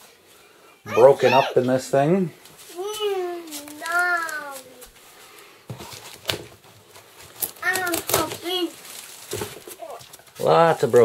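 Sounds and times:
child calling out: 0.8 - 1.6, 2.8 - 4.8
styrofoam and cardboard crackling: 2.6 - 5.0, 5.7 - 11.0.

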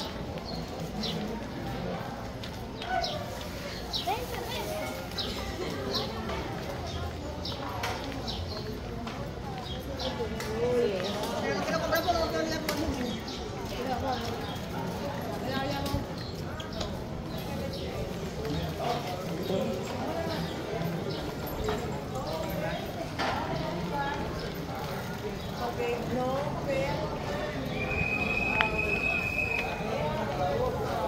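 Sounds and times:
indistinct chatter: 0.0 - 31.0.

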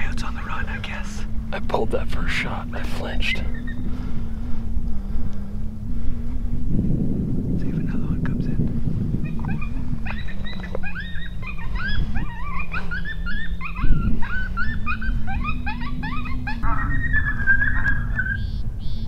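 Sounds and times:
coyotes yipping and yelping: 0.0 - 4.7, 9.0 - 19.0
coyote howl: 2.2 - 3.9, 9.2 - 19.0.

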